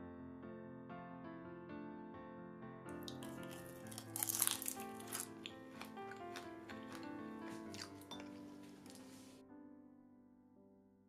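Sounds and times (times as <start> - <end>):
soft piano music: 0.0 - 11.0
crunching bite into fried food: 2.9 - 9.3.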